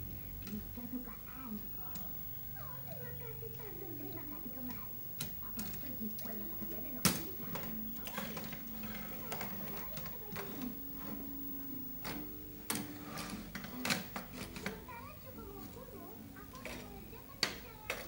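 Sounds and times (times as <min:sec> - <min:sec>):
plastic toys clacking on wood: 0:07.0 - 0:10.7, 0:16.5 - 0:18.0.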